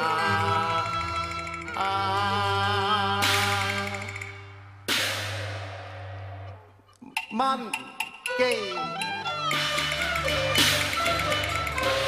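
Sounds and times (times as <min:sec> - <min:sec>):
cymbal crash ringing: 0:03.2 - 0:06.5.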